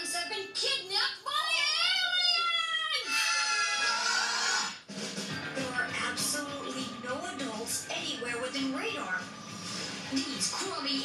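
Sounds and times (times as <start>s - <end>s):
trailer music from television: 0.0s - 11.0s.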